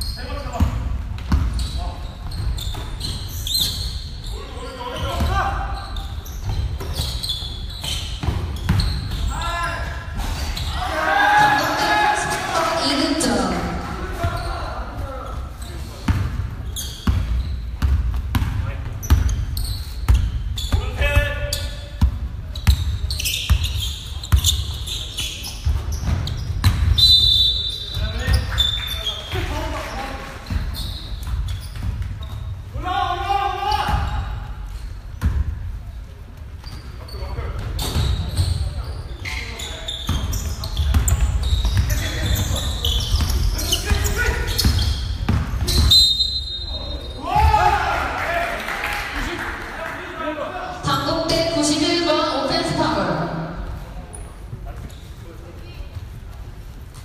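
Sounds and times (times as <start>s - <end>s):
sneaker squeaks: 0.0s - 32.7s, 36.4s - 47.5s, 51.3s - 57.0s
basketball bouncing on court: 0.5s - 3.1s, 7.8s - 9.3s, 16.1s - 24.8s, 25.6s - 27.0s, 40.1s - 45.9s
players shouting: 10.6s - 14.9s, 47.0s - 49.5s.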